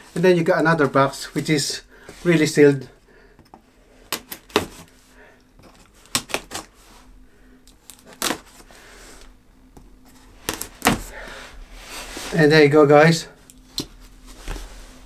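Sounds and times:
knife slitting tape on cardboard: 4.1 - 4.9, 6.0 - 6.7.

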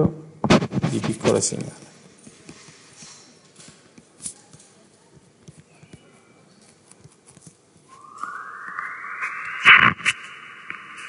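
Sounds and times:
stylus tapping and scratching: 0.4 - 2.9.

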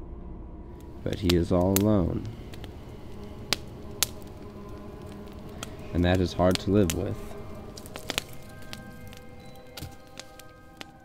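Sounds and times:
faint steady hum: 0.0 - 11.0
campfire popping: 0.8 - 11.0.

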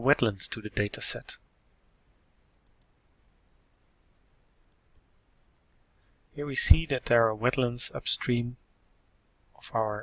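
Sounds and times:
computer mouse clicks: 2.6 - 3.0, 4.6 - 5.1.

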